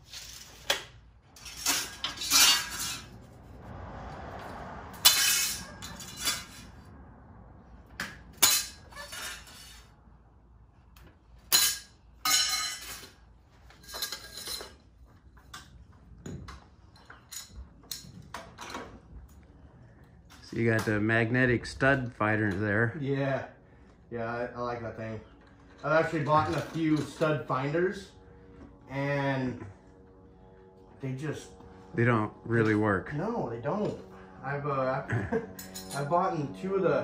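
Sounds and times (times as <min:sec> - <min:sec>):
metallic clanks of angle iron: 0:01.4 - 0:03.1, 0:05.0 - 0:06.7, 0:11.5 - 0:13.1, 0:35.6 - 0:36.1.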